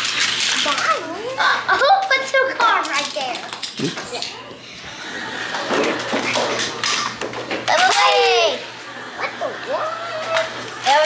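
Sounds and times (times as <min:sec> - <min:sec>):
children chattering: 0:03.8 - 0:11.0.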